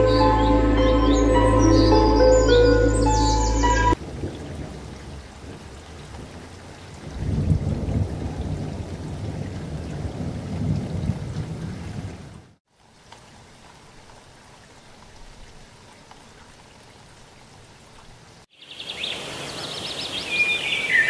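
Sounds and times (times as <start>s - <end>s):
background music: 0.0s - 4.0s
bird calls: 18.6s - 21.0s.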